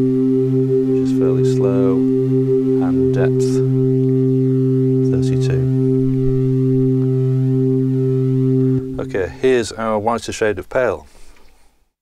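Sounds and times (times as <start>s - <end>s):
synthesiser organ tone: 0.0s - 10.2s.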